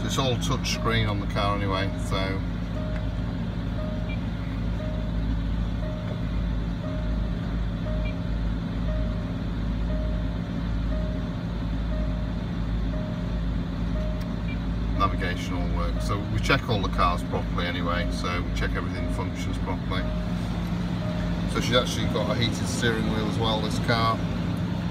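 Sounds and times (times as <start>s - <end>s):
car engine idling: 0.0s - 24.9s
electronic beep: 3.8s - 5.2s, 5.8s - 8.3s.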